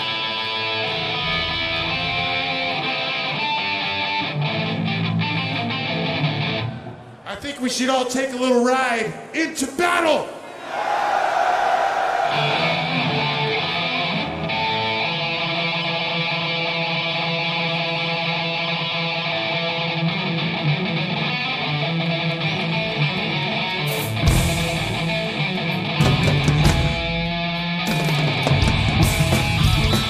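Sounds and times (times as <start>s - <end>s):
distorted electric guitar riff: 0.0s - 7.1s, 12.4s - 30.0s
drums with cymbal crashes: 26.0s - 30.0s.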